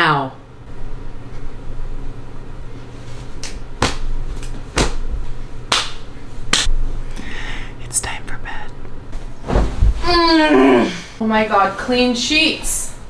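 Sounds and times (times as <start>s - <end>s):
low steady hum: 0.0s - 13.0s
sharp snaps: 5.7s - 6.7s.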